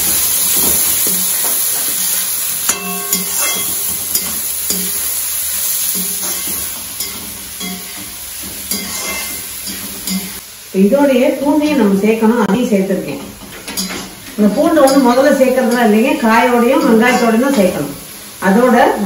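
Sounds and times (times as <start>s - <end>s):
vegetables sizzling in a wok: 0.0s - 19.0s
metal ladle scraping and knocking pan: 0.6s - 5.0s, 5.9s - 10.4s, 13.3s - 15.9s.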